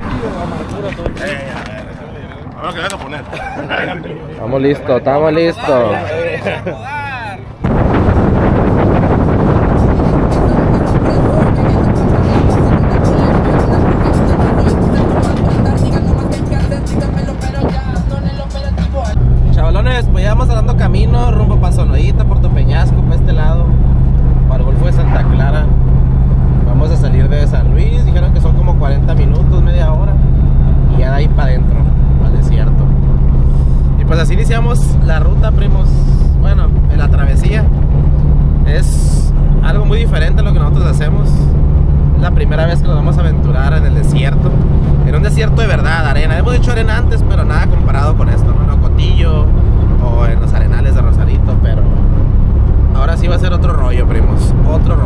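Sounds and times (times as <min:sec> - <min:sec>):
engine and road drone: 0:00.0 - 0:55.0
wind rushing over microphone: 0:07.4 - 0:55.0
music with singing: 0:09.4 - 0:19.2.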